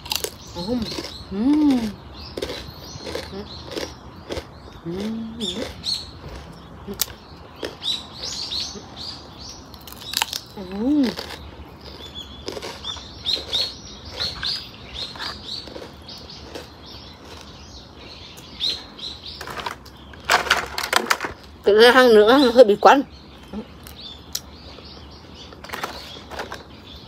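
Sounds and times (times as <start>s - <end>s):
crisp crunching of rice cracker: 0.0s - 7.8s, 9.7s - 17.6s
small birds chirping: 0.0s - 27.0s.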